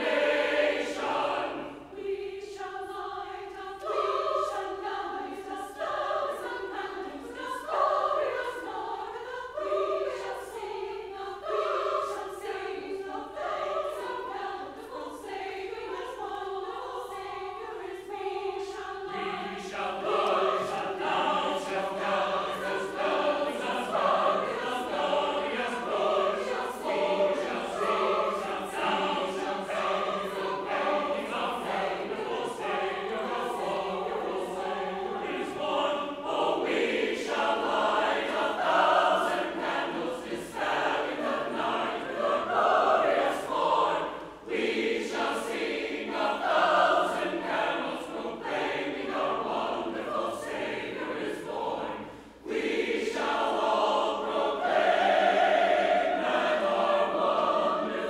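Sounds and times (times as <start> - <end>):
church choir singing: 0.0 - 58.0.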